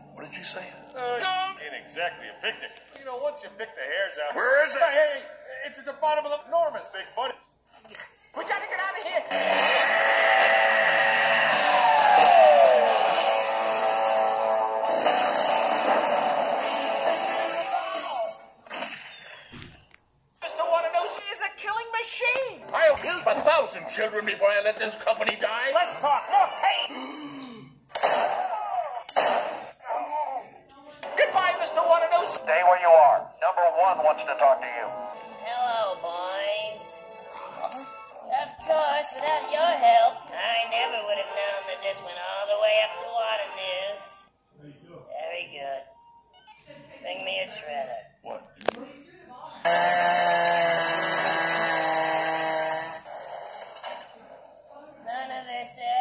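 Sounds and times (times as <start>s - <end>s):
harsh vocal outbursts: 8.4s - 18.9s, 25.5s - 30.4s.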